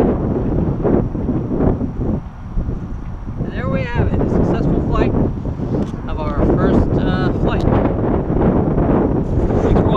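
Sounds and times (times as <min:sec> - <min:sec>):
wind buffeting microphone: 0:00.0 - 0:09.9
man's voice: 0:03.5 - 0:05.2, 0:06.0 - 0:07.8, 0:09.6 - 0:09.9.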